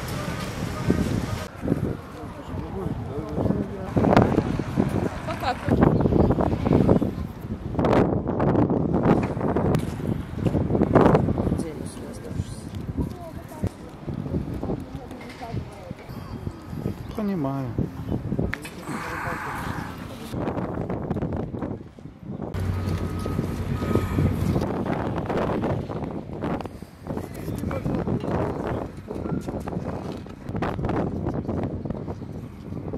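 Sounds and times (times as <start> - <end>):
faint street ambience: 0.0 - 32.9
wind buffeting microphone: 0.0 - 32.9
low engine hum: 22.5 - 26.4.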